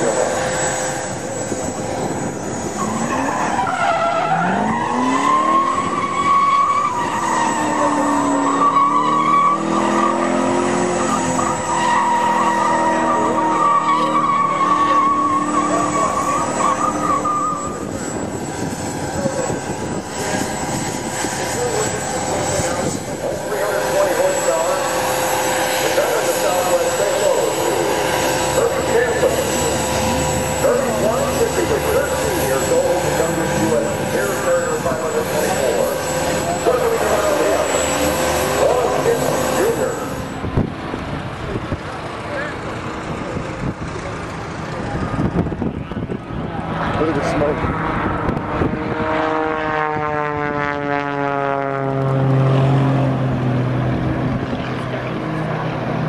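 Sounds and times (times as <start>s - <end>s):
propeller airplane engine: 0.0s - 3.6s, 14.3s - 56.0s
tires squealing: 0.0s - 40.7s
car engine revving: 0.0s - 50.1s.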